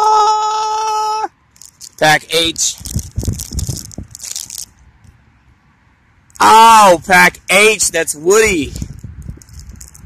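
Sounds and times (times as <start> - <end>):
plastic foil bag crinkling: 1.6 - 4.7.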